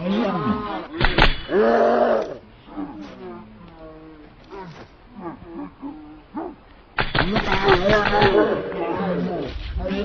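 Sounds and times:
men's voices: 0.0 - 10.0.

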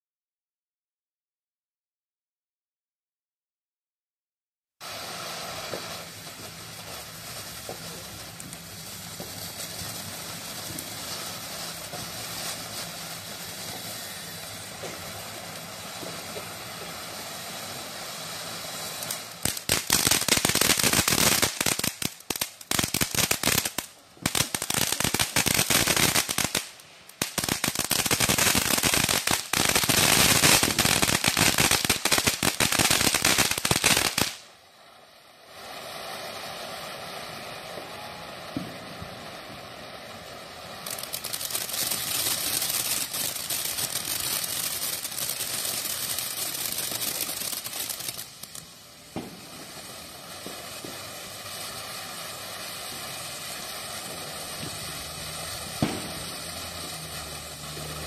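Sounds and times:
fireworks crackling: 4.8 - 58.0.

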